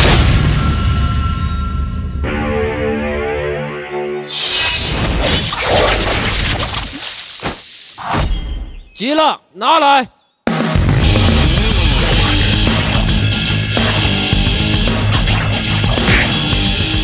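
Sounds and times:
crashing shattering burst: 0.0 - 2.2.

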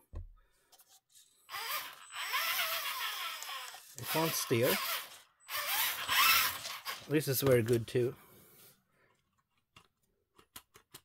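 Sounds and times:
servo whirring and grinding: 1.2 - 7.8.

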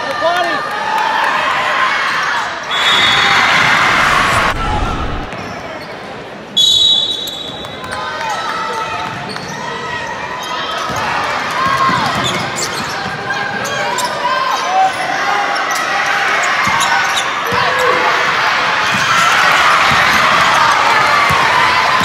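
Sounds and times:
spectator voices: 3.4 - 5.4
sneaker squeaks: 12.0 - 14.3.

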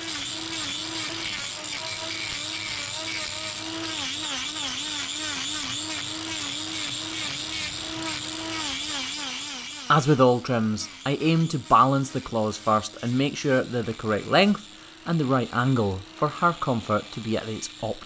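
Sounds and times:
angle grinder grinding hoof: 0.0 - 18.0.

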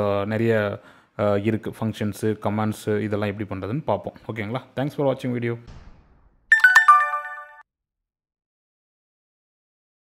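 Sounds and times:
bell-like chime jingle: 6.5 - 7.6.

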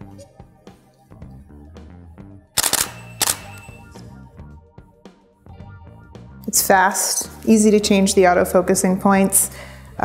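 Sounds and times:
background music with steady beat: 0.0 - 10.0
camera shutter and mirror firing: 2.6 - 4.0.

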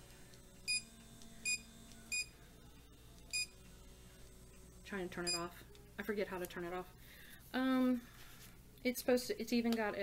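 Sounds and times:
faint device hum: 0.0 - 10.0.

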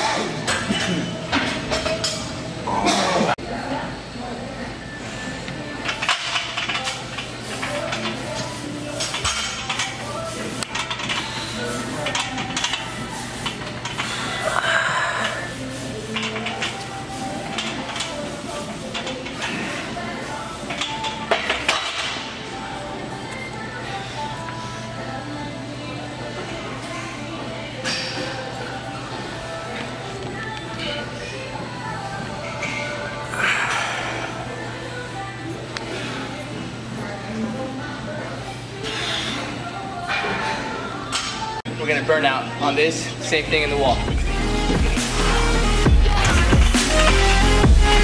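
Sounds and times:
background music: 9.0 - 48.0.

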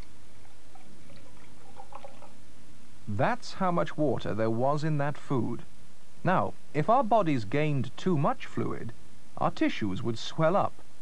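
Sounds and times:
water pouring into a glass: 0.0 - 2.4
steady low hum: 0.0 - 11.0.

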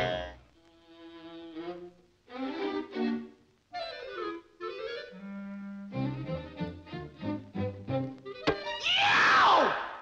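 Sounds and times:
orchestral cartoon music with clarinet: 0.0 - 8.0.

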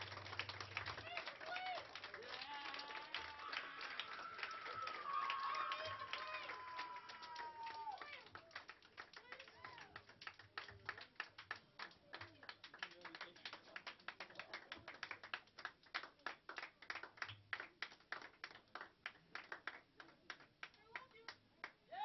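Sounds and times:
light scattered clapping: 0.0 - 21.8.

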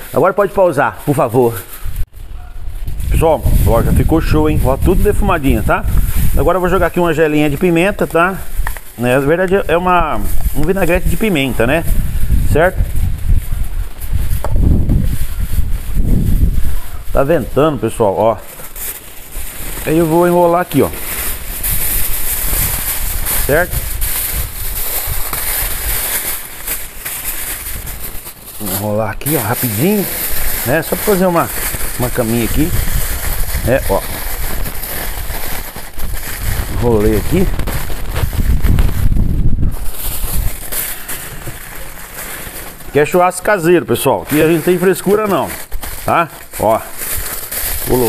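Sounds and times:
aluminium foil crinkling: 0.0 - 48.0
wind rumbling on microphone: 1.7 - 42.0, 44.4 - 48.0.

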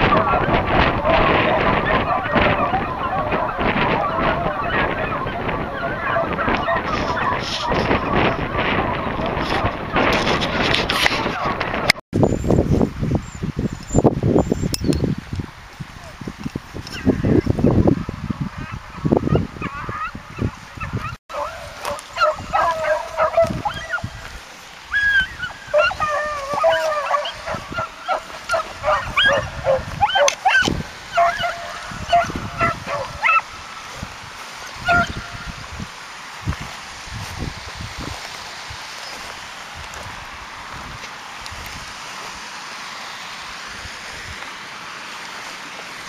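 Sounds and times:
hounds yelping: 0.0 - 11.9, 18.5 - 35.6
wind buffeting microphone: 0.0 - 42.4.

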